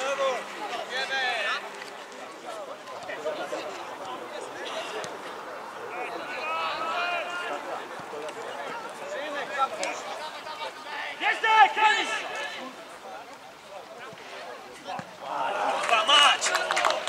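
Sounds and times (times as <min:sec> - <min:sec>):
open-air ground noise: 0:00.0 - 0:17.0
men shouting: 0:05.9 - 0:07.7, 0:10.8 - 0:12.4.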